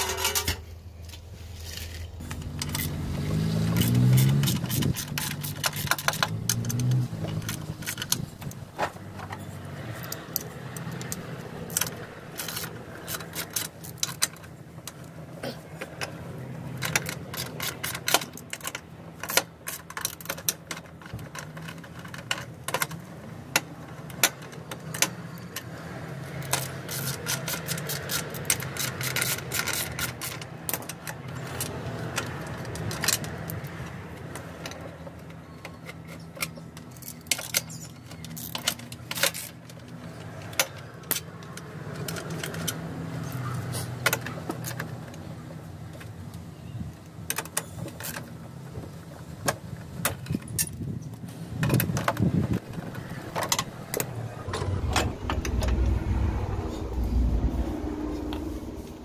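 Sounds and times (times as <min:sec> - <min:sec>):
metal tools clinking: 0:00.0 - 0:00.6.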